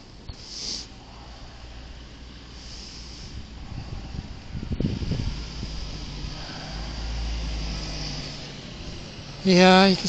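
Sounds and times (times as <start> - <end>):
vehicle engine rumble passing: 0.9 - 10.0
low bumps: 3.1 - 10.0.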